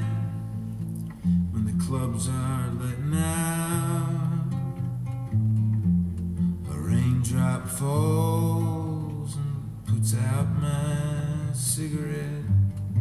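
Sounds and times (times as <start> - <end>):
man singing: 0.0 - 0.4, 1.5 - 4.7, 6.6 - 12.8
classical guitar playing: 0.0 - 13.0.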